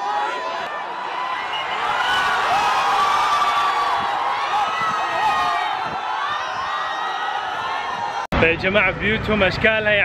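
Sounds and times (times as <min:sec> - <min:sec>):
long drawn-out shout: 0:00.0 - 0:08.3
crowd cheering and shouting: 0:00.0 - 0:08.5.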